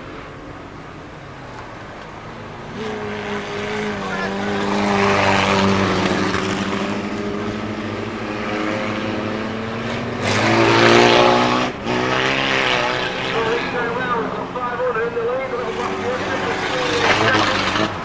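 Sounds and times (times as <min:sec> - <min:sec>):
small race car engines: 0:00.0 - 0:18.0
tyre and road noise: 0:00.0 - 0:18.0.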